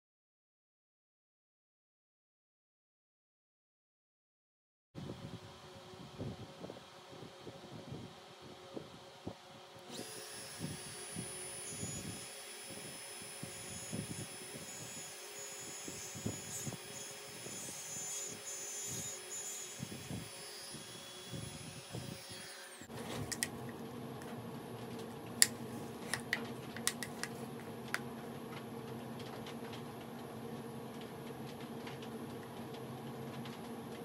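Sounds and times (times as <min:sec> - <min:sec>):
router motor whine: 0:09.8 - 0:23.8, 0:25.4 - 0:28.0.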